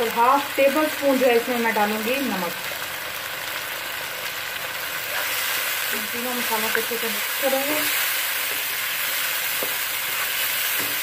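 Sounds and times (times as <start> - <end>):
onions and tomatoes sizzling in oil: 0.0 - 11.0.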